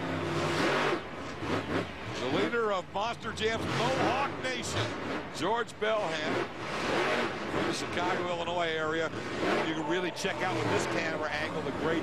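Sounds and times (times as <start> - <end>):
monster truck engine revving: 0.0 - 12.0.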